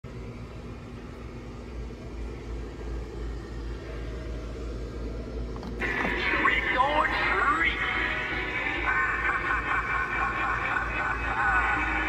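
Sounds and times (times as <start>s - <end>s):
shop background rumble and hum: 0.0s - 12.0s.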